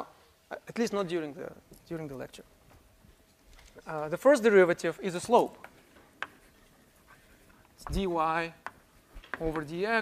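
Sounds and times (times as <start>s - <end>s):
faint scratching of writing: 5.7s - 9.7s.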